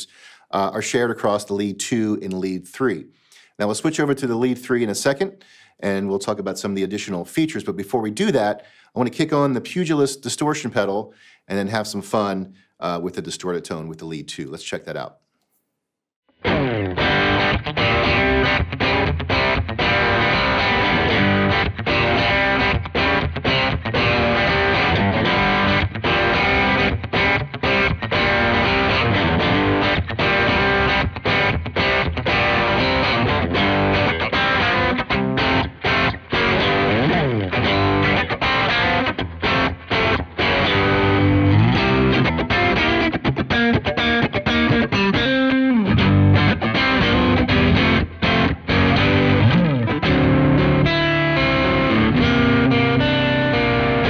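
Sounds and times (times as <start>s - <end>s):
distorted electric guitar riff: 16.3s - 54.0s.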